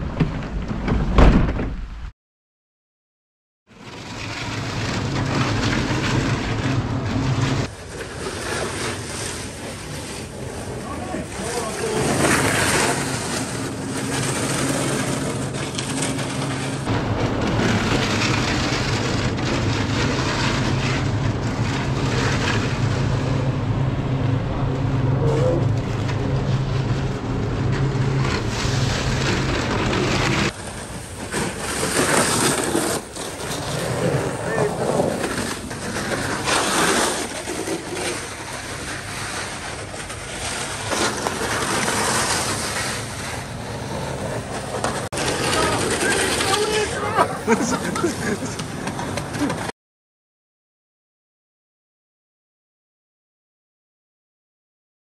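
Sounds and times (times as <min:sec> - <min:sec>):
electric snow scooter humming: 0:03.9 - 0:49.7
indistinct voices: 0:45.2 - 0:48.7.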